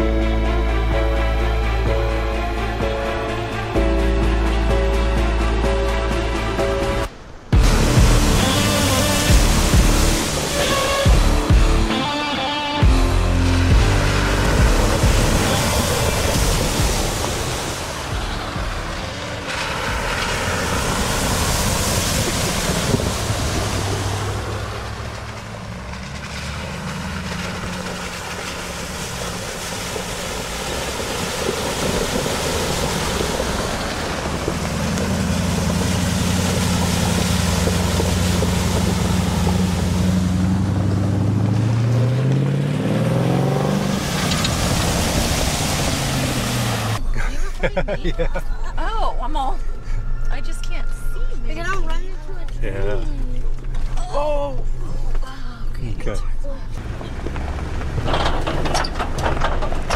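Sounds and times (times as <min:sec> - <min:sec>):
vehicle engines running: 0:00.0 - 0:59.9
water splashing around tyres: 0:06.9 - 0:47.1, 0:52.7 - 0:59.9
wind on microphone: 0:20.5 - 0:24.8.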